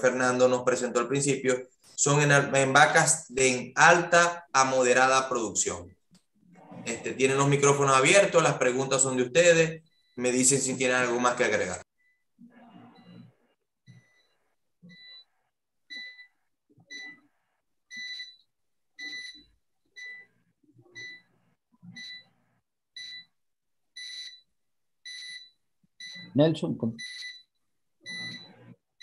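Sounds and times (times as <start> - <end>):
faint electronic alarm beeping: 0.0 - 29.0.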